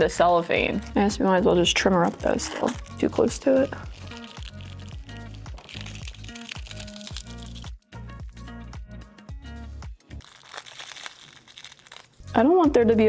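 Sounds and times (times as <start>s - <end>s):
cellophane crinkling: 3.6s - 7.7s, 10.2s - 12.2s.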